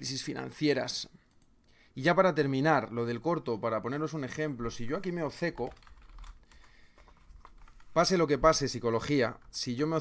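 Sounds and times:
computer keyboard taps: 5.6 - 7.9.

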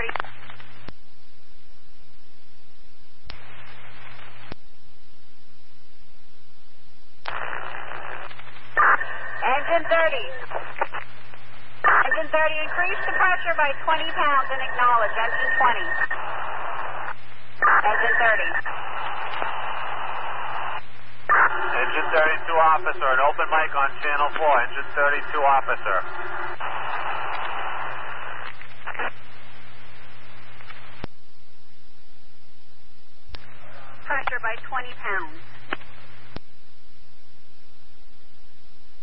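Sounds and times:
radio squelch: 0.0 - 0.9, 3.3 - 4.6, 7.2 - 31.1, 33.3 - 36.4
radio static: 0.0 - 0.9, 3.3 - 4.6, 7.3 - 31.1, 33.3 - 36.4
low hum: 0.0 - 39.0
radio voice transmissions: 7.3 - 11.0, 11.8 - 29.2, 33.4 - 35.8.

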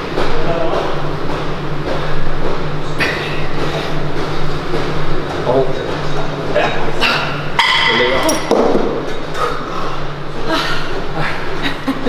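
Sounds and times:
weight stack clanking: 0.0 - 9.7.

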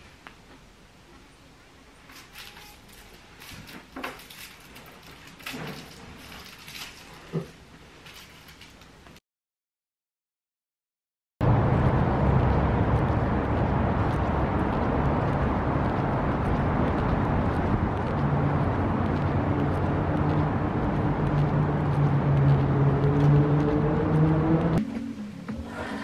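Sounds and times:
road traffic rumble: 11.4 - 24.8
vehicle engine hum: 11.4 - 24.8.

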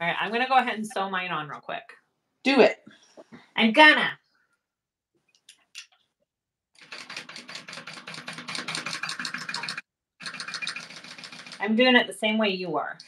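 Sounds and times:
sewing machine stitching: 6.8 - 11.9.

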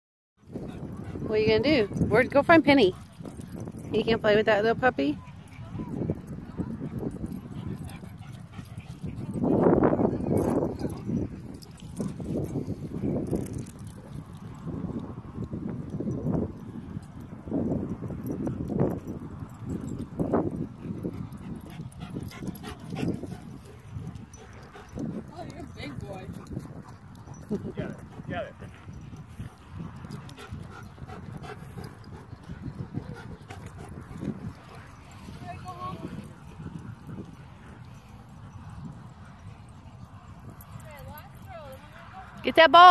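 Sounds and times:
dog panting: 6.8 - 9.6, 20.6 - 42.2.

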